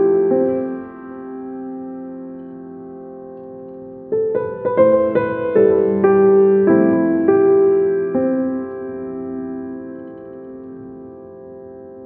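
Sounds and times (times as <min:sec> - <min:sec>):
piano chord ringing: 0:00.0 - 0:12.0.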